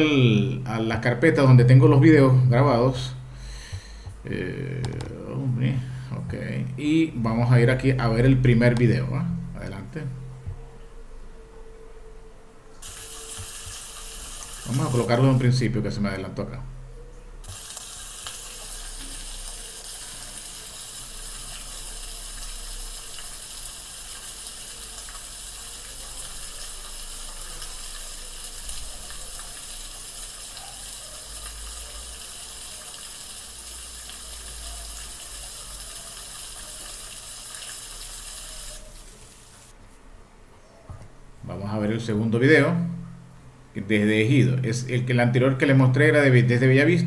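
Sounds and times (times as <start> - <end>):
steady high hiss: 0.0 - 10.3, 12.7 - 16.8, 17.4 - 39.8.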